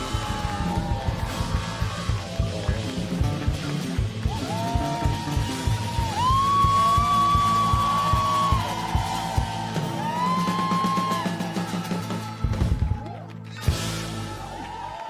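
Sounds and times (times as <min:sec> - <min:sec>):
pop-rock band playing: 0:00.0 - 0:14.6.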